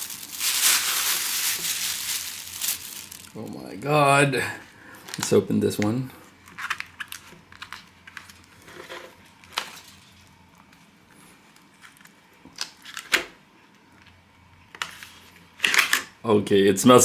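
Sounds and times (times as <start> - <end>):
aluminium foil crinkling: 0.0 - 3.4.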